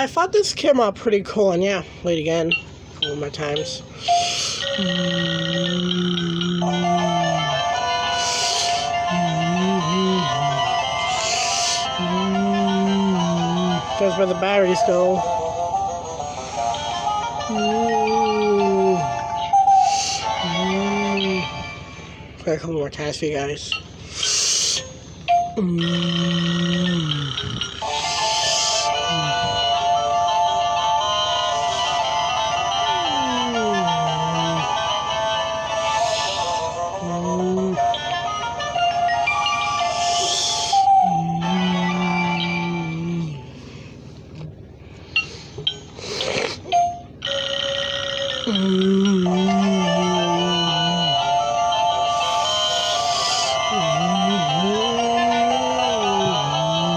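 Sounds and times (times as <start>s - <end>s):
electronic toy tune: 2.5s - 22.1s, 23.8s - 43.3s, 46.7s - 56.9s.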